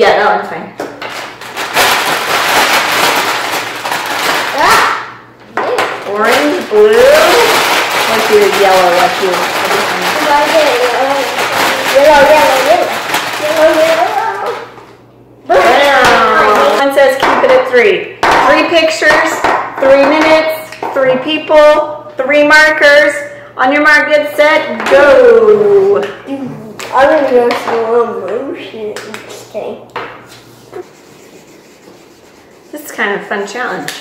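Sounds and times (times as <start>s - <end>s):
woman talking: 0.0s - 0.8s, 5.8s - 10.8s, 11.7s - 13.0s, 15.5s - 26.2s, 32.7s - 34.0s
paper bag crumpling: 1.1s - 4.8s, 6.4s - 14.7s
plastic markers rattling in a bag: 1.4s - 4.8s, 6.2s - 14.7s.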